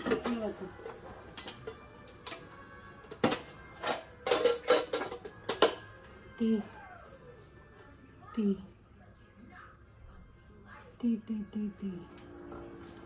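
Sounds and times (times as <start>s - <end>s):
faint background music: 0.0s - 13.0s
containers clicking and knocking: 1.3s - 5.9s.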